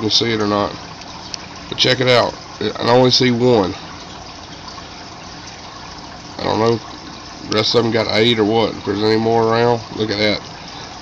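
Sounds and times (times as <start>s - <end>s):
aquarium filter water trickling: 0.0s - 11.0s.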